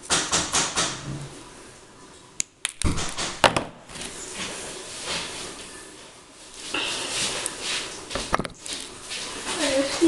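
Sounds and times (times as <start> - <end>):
rustle of hands handling tools: 3.9 - 10.0.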